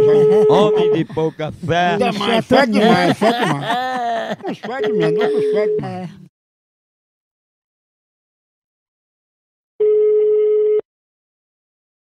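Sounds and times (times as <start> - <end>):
telephone ringback tone beep: 9.8 - 10.8.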